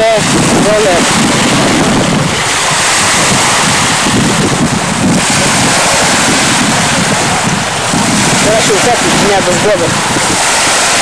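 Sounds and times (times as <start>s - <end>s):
small waves breaking on sand: 0.0s - 11.0s
wind buffeting microphone: 0.0s - 11.0s.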